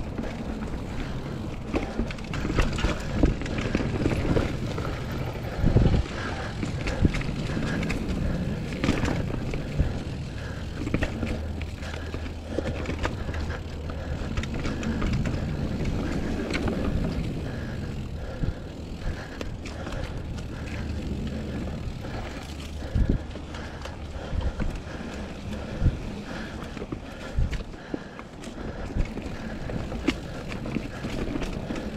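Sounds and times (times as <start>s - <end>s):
bike rattling over bumps: 0.0s - 31.9s
bike tyres rushing on dirt: 0.0s - 31.9s.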